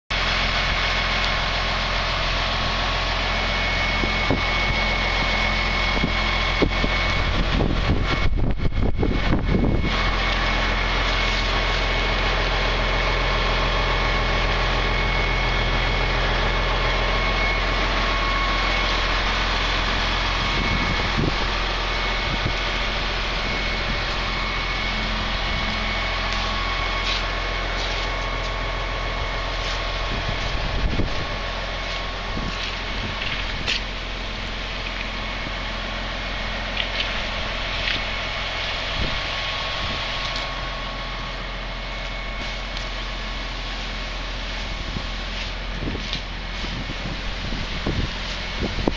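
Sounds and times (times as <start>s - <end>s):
engine idling: 0.1s - 48.9s
faint high whine: 0.5s - 48.9s
wind buffeting microphone: 3.8s - 10.3s, 18.3s - 26.8s, 29.8s - 33.9s, 38.8s - 40.3s, 44.8s - 48.9s.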